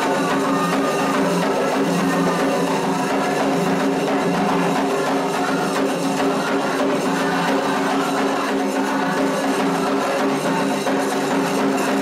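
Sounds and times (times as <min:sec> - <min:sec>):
hand drums playing ritual music: 0:00.0 - 0:12.0.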